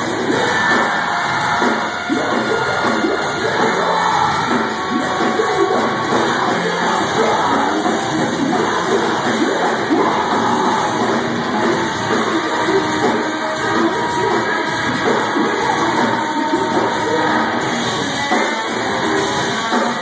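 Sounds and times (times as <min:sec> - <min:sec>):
shouted vocal: 0:00.0 - 0:17.6
bass: 0:00.0 - 0:20.0
distorted electric guitars: 0:00.0 - 0:20.0
drums: 0:00.0 - 0:20.0.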